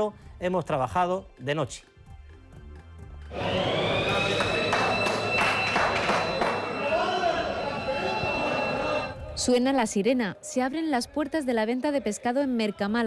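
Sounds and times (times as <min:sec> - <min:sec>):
electric siren wailing: 0:03.3 - 0:09.5.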